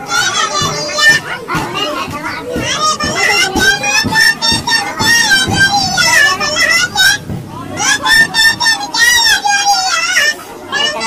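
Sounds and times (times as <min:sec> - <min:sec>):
high-pitched cartoon voices chattering: 0:00.0 - 0:11.0.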